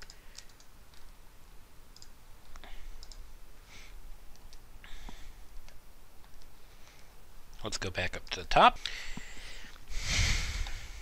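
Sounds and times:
computer mouse clicks: 0.0s - 1.2s, 1.9s - 3.3s, 4.3s - 7.1s.

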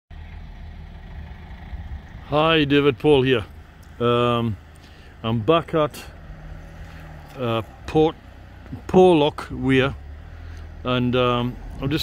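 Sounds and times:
car engine low rumble: 0.1s - 12.0s.

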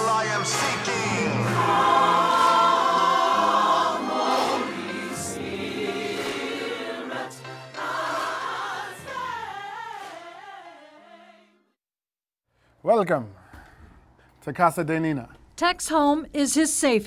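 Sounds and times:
choir singing held notes: 0.0s - 11.6s.

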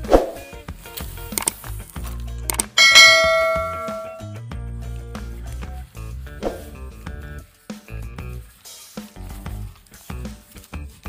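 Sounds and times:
background music: 0.0s - 11.0s
short clicks: 1.3s - 1.6s, 2.5s - 2.8s
bright bell-like ding: 2.8s - 4.4s.

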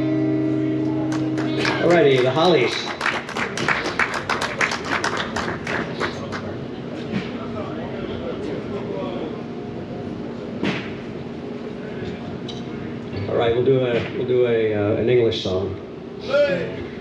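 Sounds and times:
audience handclapping: 0.8s - 6.6s.

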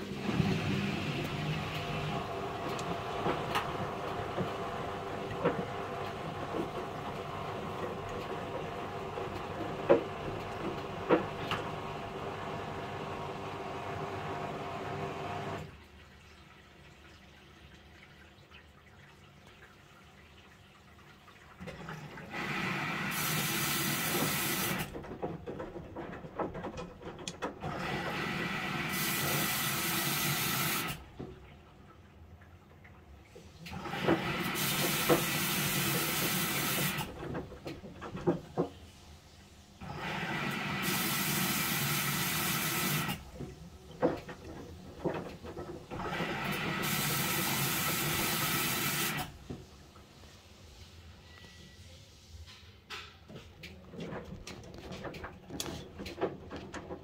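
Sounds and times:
washing machine drum turning: 0.0s - 12.6s, 33.7s - 38.8s, 40.0s - 49.7s, 52.8s - 57.0s
water hissing through inlet: 22.3s - 24.9s, 27.6s - 31.1s, 33.2s - 37.2s, 38.8s - 43.4s, 45.9s - 52.4s.

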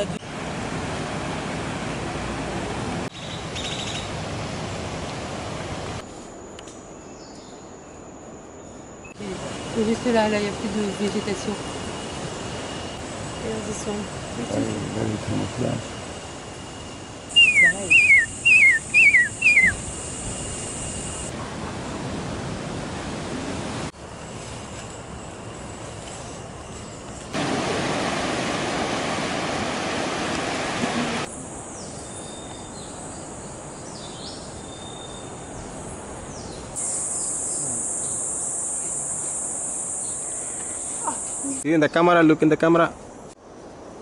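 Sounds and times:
steady high hiss: 3.4s - 21.4s, 22.8s - 44.0s
faint bird calls: 17.3s - 19.8s
surf washing over rocks: 27.4s - 31.3s.

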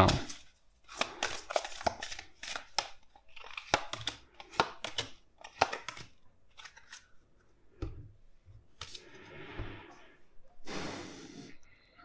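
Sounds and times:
cards snapping and slapping: 0.0s - 7.1s
cards sliding rustle: 0.1s - 7.6s, 8.6s - 9.9s.

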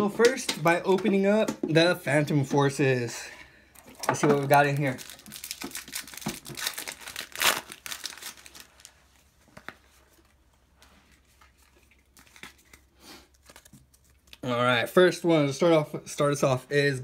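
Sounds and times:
plastic foil wrapper tearing: 4.4s - 9.0s.

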